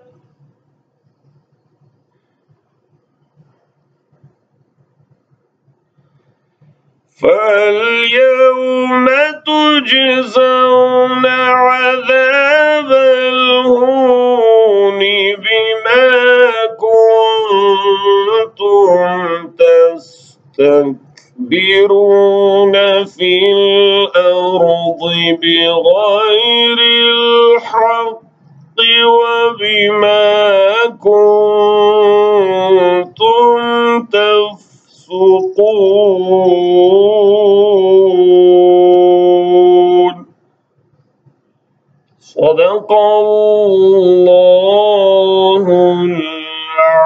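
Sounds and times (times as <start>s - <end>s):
man chanting melodic recitation: 7.2s - 40.3s, 42.2s - 47.0s.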